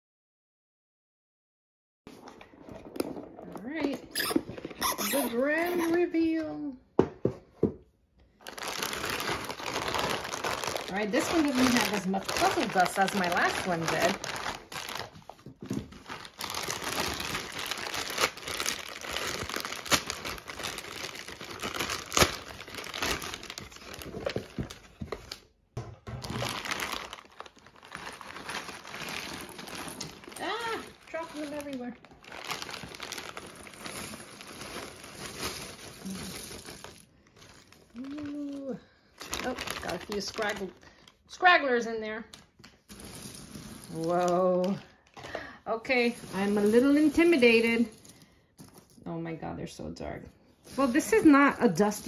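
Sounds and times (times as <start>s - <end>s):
plastic bag crinkling: 4.2s - 6.0s, 8.3s - 41.4s, 42.4s - 49.0s, 50.7s - 52.0s
puzzle pieces emptied onto table: 42.9s - 44.8s.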